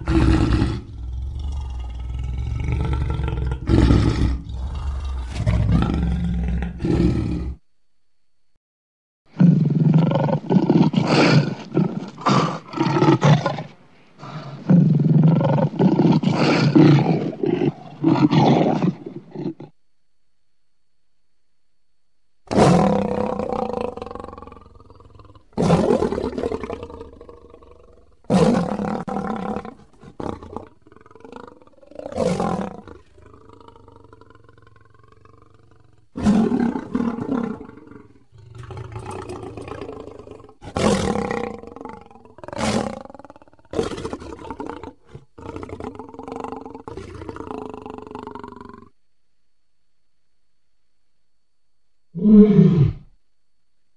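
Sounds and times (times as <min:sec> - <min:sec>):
dinosaur roars: 0:00.0 - 0:07.6, 0:22.5 - 0:48.9, 0:52.2 - 0:53.1
quiet growls: 0:00.0 - 0:07.6, 0:09.3 - 0:19.8, 0:22.5 - 0:49.0, 0:52.1 - 0:53.2.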